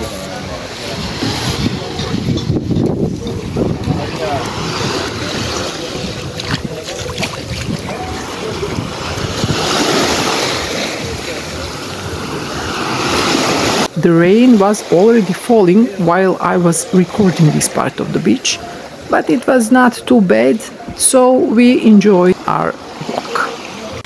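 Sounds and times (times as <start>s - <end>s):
wind buffeting microphone: 0.5s - 12.7s
small waves breaking on shore: 3.1s - 24.0s.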